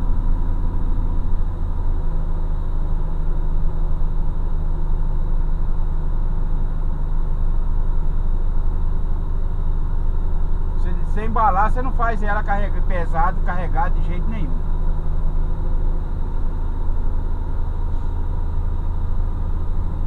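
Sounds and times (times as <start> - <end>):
road noise: 0.0 - 20.0
truck diesel engine droning: 0.0 - 20.0.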